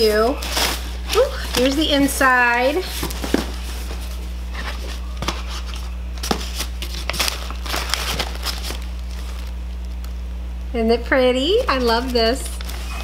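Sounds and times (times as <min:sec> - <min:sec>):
paper and cardboard rustling: 0:00.0 - 0:09.6, 0:11.5 - 0:13.0
steady low hum: 0:00.0 - 0:13.0.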